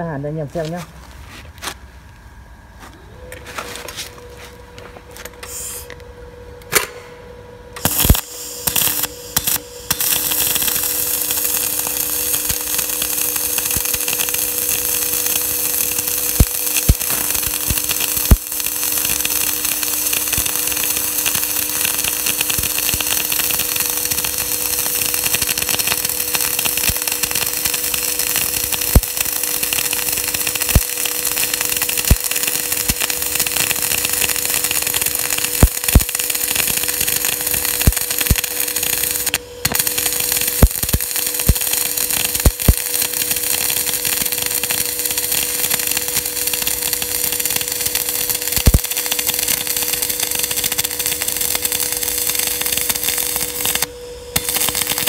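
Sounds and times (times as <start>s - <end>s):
steady low hum: 0.0s - 55.0s
welding arc crackling hiss: 5.4s - 6.0s, 7.8s - 55.0s
welding spatter pops: 7.8s - 55.0s.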